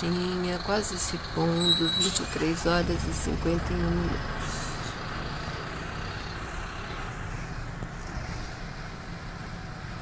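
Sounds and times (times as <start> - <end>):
low traffic rumble: 0.0 - 10.0.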